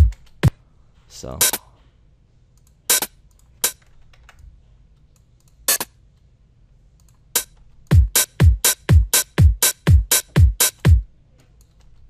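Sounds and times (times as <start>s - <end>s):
hi-hat hits: 0.0s - 0.6s, 1.4s - 1.6s, 2.9s - 3.8s, 7.4s - 11.0s.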